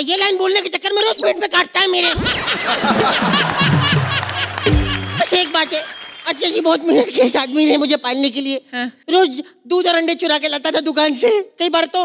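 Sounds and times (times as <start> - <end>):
laughter: 2.1 - 5.7.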